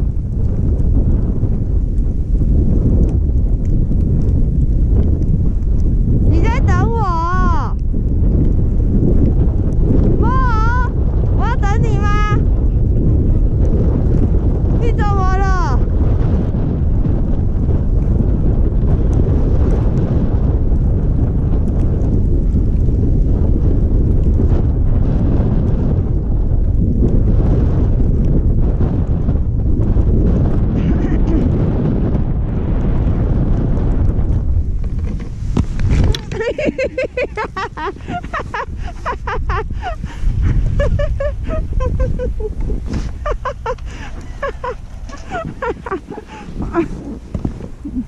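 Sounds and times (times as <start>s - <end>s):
wind rushing over microphone: 0.0s - 48.0s
skis running on snow: 33.6s - 48.0s.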